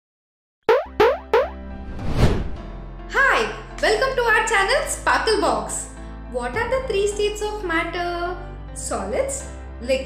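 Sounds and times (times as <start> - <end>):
pitched pop sound effects: 0.7 - 1.7.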